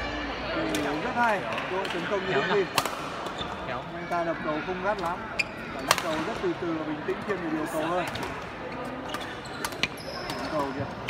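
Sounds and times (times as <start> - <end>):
rackets striking shuttlecock: 2.7 - 3.4, 7.9 - 10.8
shoe squeak: 3.3 - 3.8, 5.3 - 6.3, 8.7 - 11.0.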